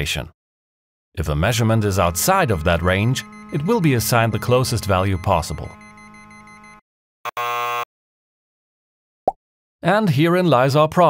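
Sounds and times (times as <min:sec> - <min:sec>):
harsh buzzing tone: 0:01.5 - 0:07.9
faint synthesized tone: 0:01.6 - 0:06.8.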